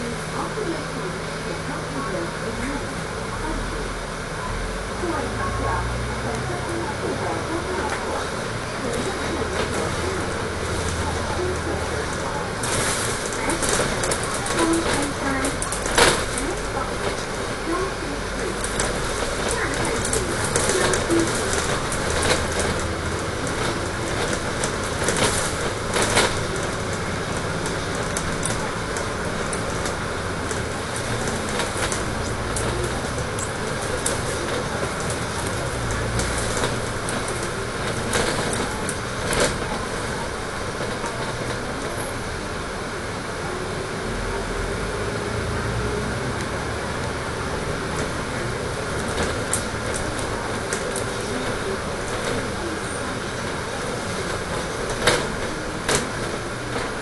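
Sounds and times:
bus engine rumble: 0.0 - 57.0
road noise: 0.0 - 57.0
bodywork clicks and rattles: 6.3 - 42.3, 45.9 - 57.0.

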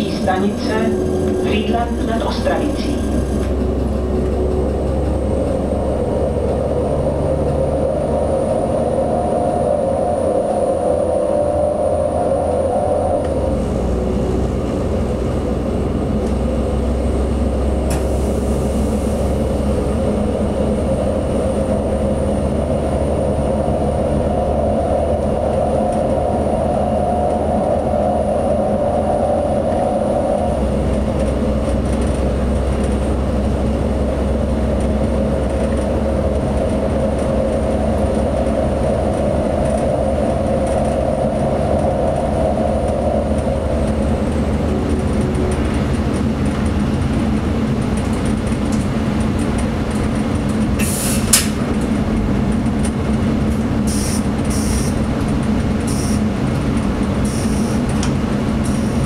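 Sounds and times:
higher drone: 0.0 - 47.6
railcar engine drone: 0.0 - 59.0
wheel-on-rail noise: 0.0 - 59.0
sharp click: 50.8 - 51.6.

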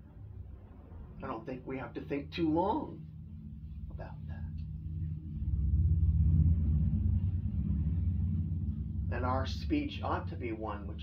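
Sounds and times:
low mechanical rumble and hum: 0.0 - 11.0.

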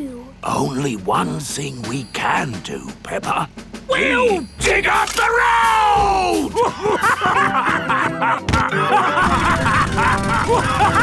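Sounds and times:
background music: 0.0 - 11.0
cartoon characters laughing: 6.3 - 11.0.

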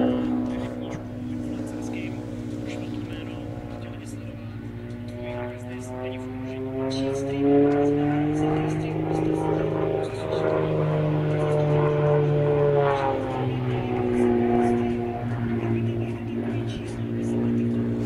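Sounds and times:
propeller plane engine droning: 0.0 - 18.0.

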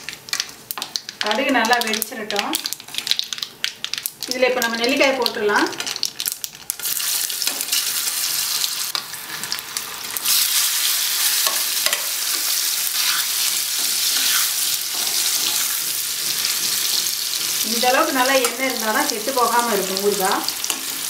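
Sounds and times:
food sizzling in hot oil: 0.0 - 21.0.

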